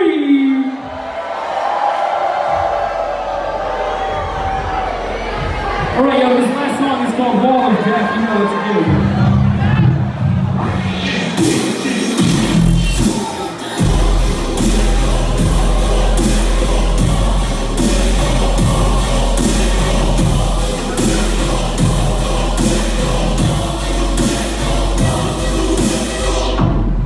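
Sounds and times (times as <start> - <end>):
steady drum beat: 2.5 - 6.8, 11.2 - 27.0
bass-heavy electronic dance music: 2.5 - 27.0.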